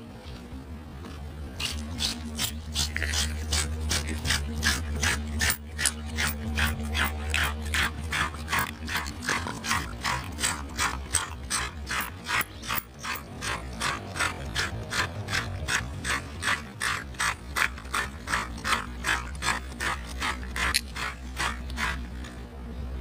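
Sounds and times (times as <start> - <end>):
comb scraping through foam: 1.6 - 22.4.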